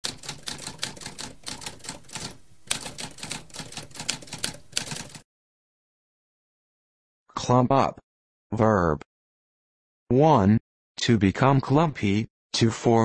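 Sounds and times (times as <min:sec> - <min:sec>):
typewriter typing: 0:00.0 - 0:05.2.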